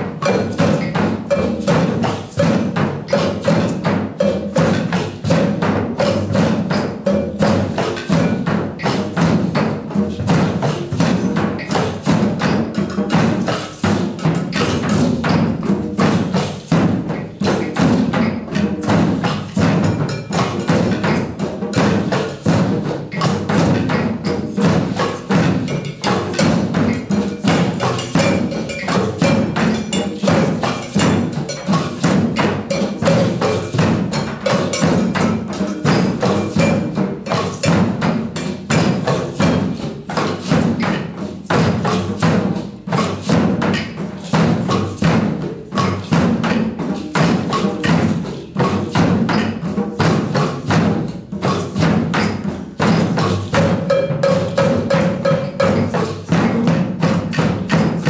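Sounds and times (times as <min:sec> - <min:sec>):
group hand drumming: 0:00.0 - 0:58.0.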